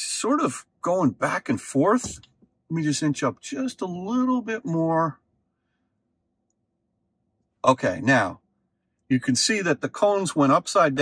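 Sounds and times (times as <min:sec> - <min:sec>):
person speaking: 0:00.0 - 0:05.2.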